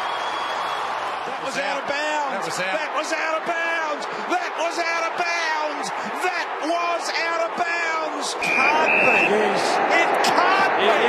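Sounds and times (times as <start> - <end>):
voices: 1.5 - 11.0.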